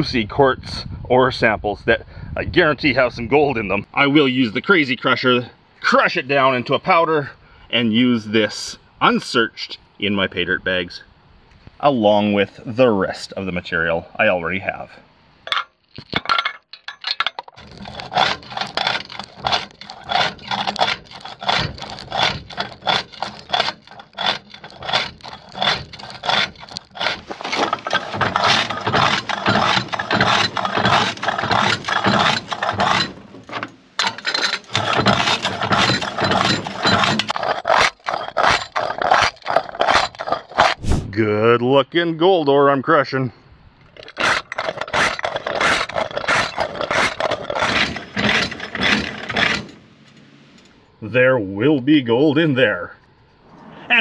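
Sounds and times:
rock crusher crunching ore: 17.5s - 40.8s, 44.0s - 49.9s.

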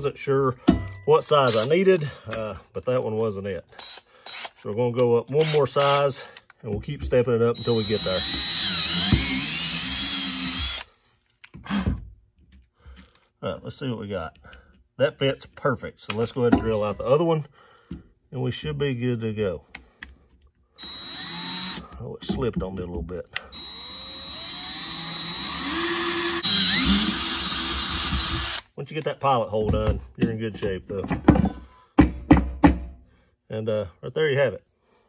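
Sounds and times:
drill whining through steel: 1.4s - 1.9s, 3.7s - 4.6s, 5.4s - 6.2s, 7.6s - 10.9s, 20.8s - 21.9s, 23.5s - 28.7s
drill knocking on wooden bench: 8.3s - 9.5s.

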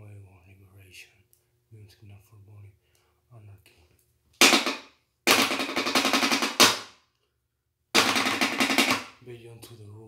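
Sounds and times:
drumsticks drumming on a box: 4.4s - 6.9s, 8.0s - 9.1s.

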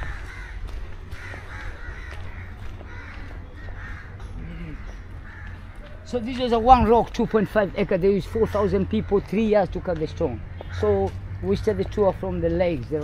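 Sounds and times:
birds calling: 0.0s - 13.0s.

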